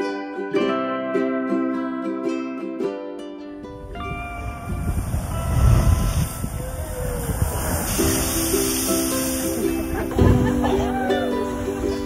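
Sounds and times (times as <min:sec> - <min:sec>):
water rushing through blowhole: 0:04.3 - 0:12.0.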